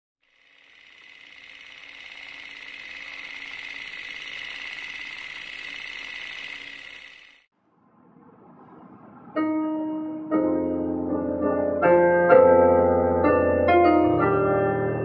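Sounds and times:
rapid mechanical rattle: 0.2 - 7.5.

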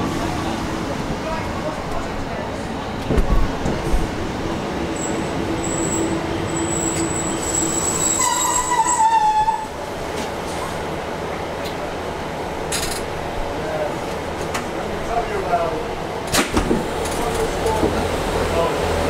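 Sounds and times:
steady train rumble: 0.0 - 19.0
train running noise with whine: 0.0 - 19.0
train wheels squealing: 5.0 - 9.7.

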